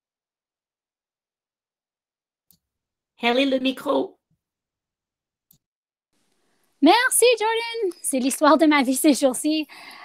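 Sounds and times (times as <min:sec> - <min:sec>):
woman speaking: 0:03.2 - 0:04.2, 0:06.8 - 0:10.0.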